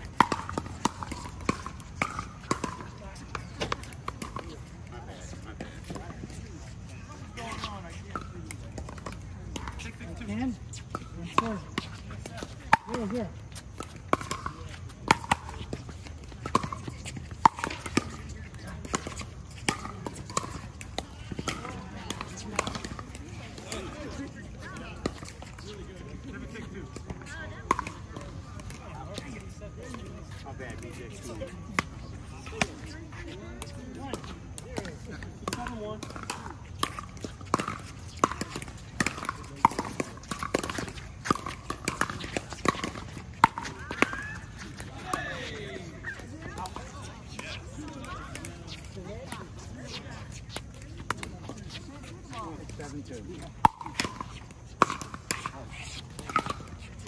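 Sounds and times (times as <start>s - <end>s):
paddles hitting plastic ball: 0.0s - 4.6s, 7.4s - 30.0s, 33.6s - 57.0s.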